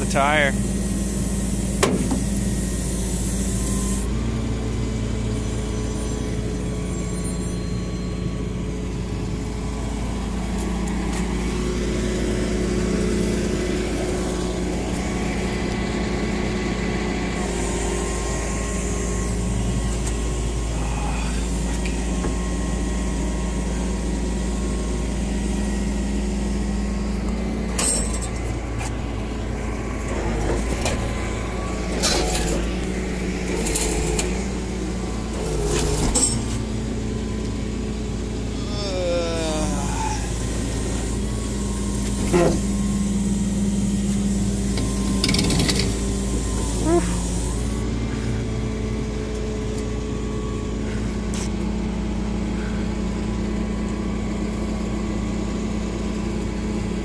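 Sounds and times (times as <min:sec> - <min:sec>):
truck engine droning: 0:00.0 - 0:57.0.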